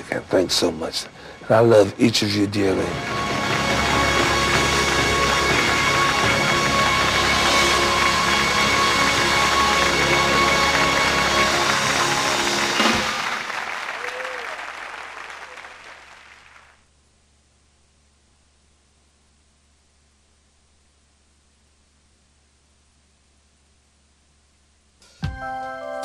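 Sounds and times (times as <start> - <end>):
music: 1.5 - 13.8, 25.0 - 26.0
audience applauding: 2.7 - 16.8.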